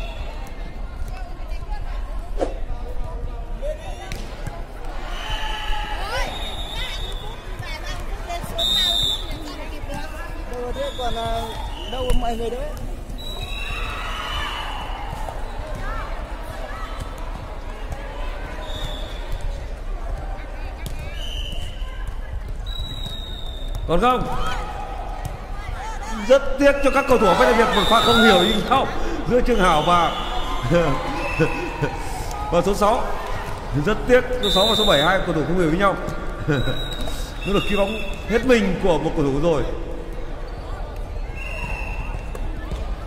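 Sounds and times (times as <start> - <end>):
players calling out: 24.0 - 39.8.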